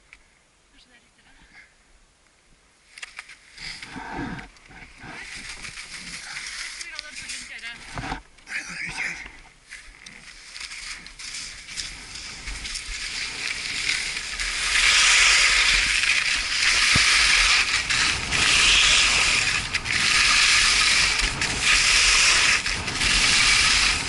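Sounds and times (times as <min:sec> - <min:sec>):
skis scraping on snow: 0:04.8 - 0:08.2, 0:09.6 - 0:24.0
wind rumble on microphone: 0:11.4 - 0:24.0.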